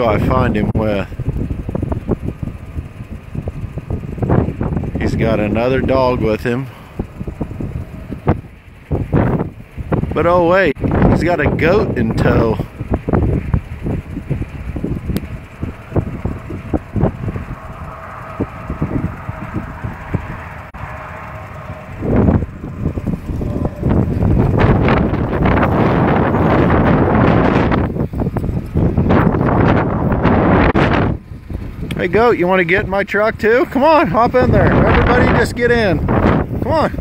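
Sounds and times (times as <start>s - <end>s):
wind rumbling on microphone: 0.0s - 37.0s.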